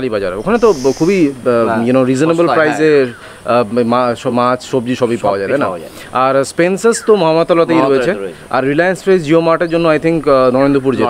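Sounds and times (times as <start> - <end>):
men talking: 0.0 - 11.0
short hiss: 0.5 - 1.4.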